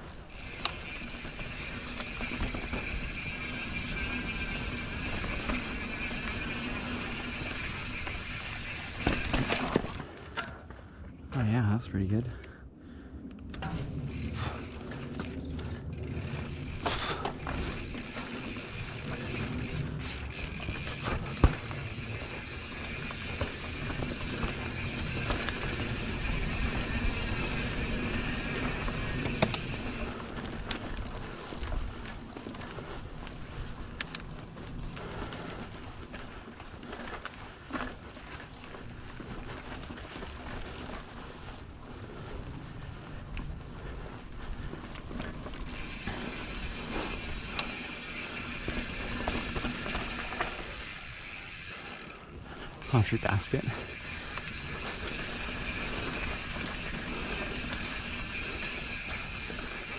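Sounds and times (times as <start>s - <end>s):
bike freehub buzzing: 0.0s - 10.1s, 13.6s - 30.2s, 38.7s - 59.9s
bike knocking over bumps: 8.9s - 10.6s, 20.3s - 25.9s.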